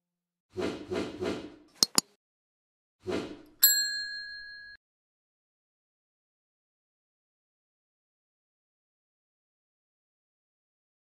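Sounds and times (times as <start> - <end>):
bright bell ding: 3.6 - 4.8.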